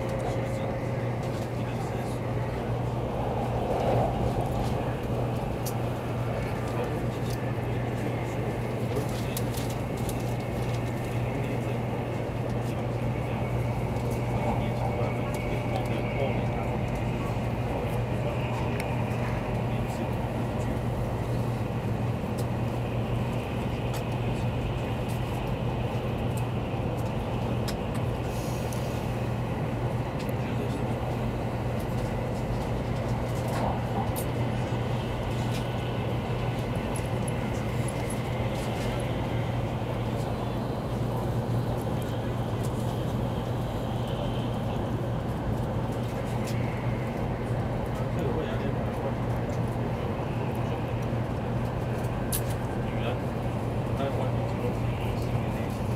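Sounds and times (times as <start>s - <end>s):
constant low hum: 0.0s - 55.9s
train running at speed: 0.0s - 55.9s.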